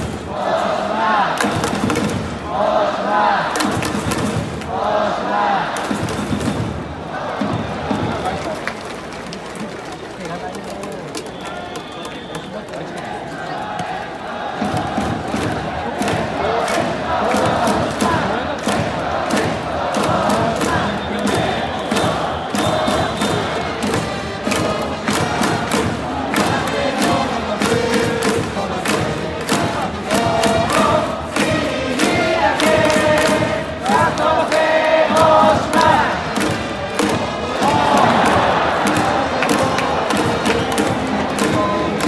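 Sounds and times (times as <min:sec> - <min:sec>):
crowd chanting in unison: 0:00.0 - 0:08.6, 0:12.9 - 0:42.0
clapping and megaphone hits: 0:01.4 - 0:02.4, 0:03.5 - 0:04.8, 0:05.7 - 0:06.7, 0:07.8 - 0:14.0, 0:14.6 - 0:42.0.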